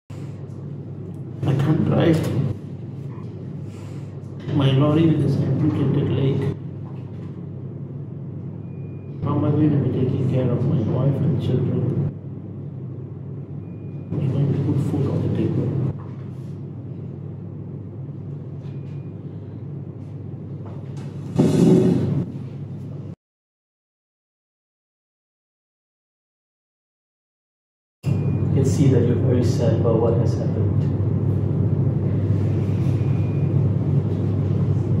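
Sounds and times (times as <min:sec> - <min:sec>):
low room tone hum: 0:00.1 - 0:23.2, 0:28.0 - 0:35.0.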